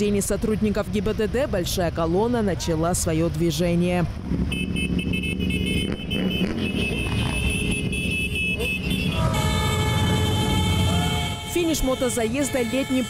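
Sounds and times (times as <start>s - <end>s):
motorcycle engines running: 0.0s - 13.0s.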